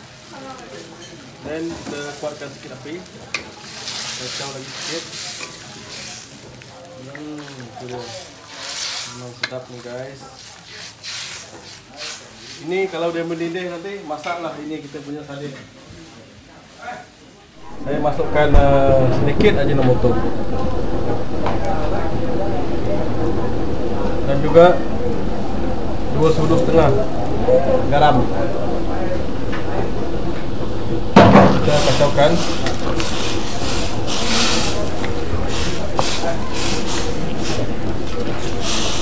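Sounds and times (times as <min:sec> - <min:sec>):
fish sizzling in a wok: 0:00.0 - 0:15.8, 0:30.9 - 0:39.0
gas burner rumbling: 0:00.0 - 0:15.8, 0:17.5 - 0:39.0
faint voices: 0:00.0 - 0:39.0
wooden spatula stirring: 0:00.8 - 0:16.8, 0:31.6 - 0:39.0.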